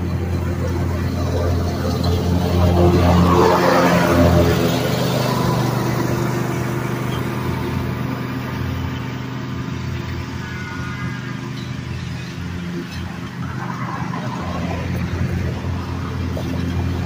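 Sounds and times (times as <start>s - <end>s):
lawn mower engine running: 0.0s - 17.0s.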